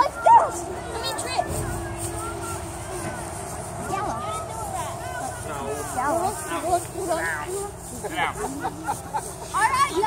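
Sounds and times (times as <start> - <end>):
children chattering: 0.0 - 10.0
low rumble: 1.2 - 6.7.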